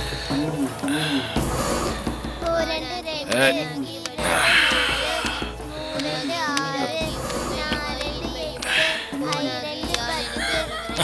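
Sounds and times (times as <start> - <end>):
background music: 0.0 - 11.0
child singing: 2.3 - 11.0.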